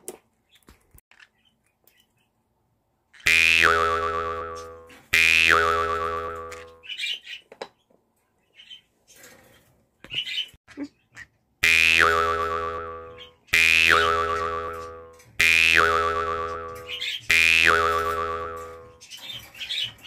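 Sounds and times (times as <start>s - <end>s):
cartoon boing spring effect: 3.3s - 6.8s, 11.6s - 18.9s.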